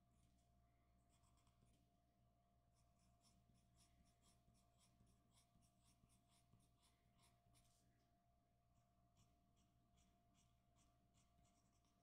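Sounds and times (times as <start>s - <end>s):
pencil scratching on paper: 0.0s - 1.9s, 2.7s - 8.0s, 8.8s - 12.0s.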